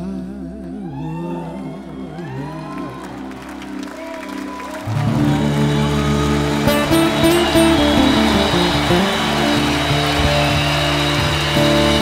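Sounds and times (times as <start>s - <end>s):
live band playing: 4.3s - 12.0s.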